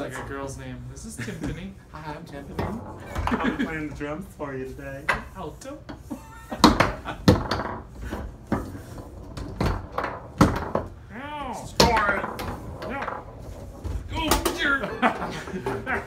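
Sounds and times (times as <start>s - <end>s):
foosball figures knocking ball: 0.0s - 0.5s, 1.3s - 4.4s, 5.0s - 16.0s.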